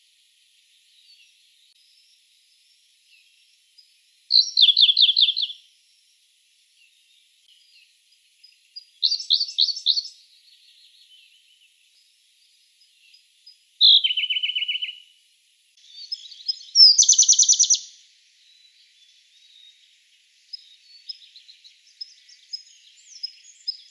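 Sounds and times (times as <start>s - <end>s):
bird singing trilled phrases: 1.0s - 6.2s, 7.1s - 15.1s, 15.8s - 23.9s.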